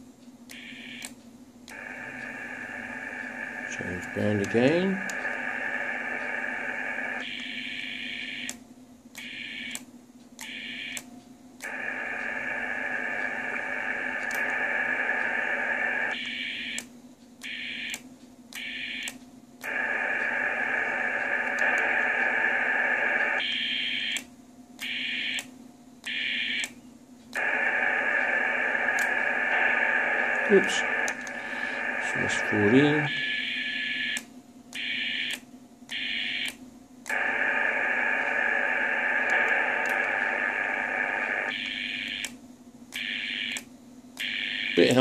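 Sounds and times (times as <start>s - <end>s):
radio receiver hiss: 1.7s - 7.2s, 11.6s - 16.2s, 19.6s - 23.4s, 27.4s - 33.4s, 37.1s - 42.3s.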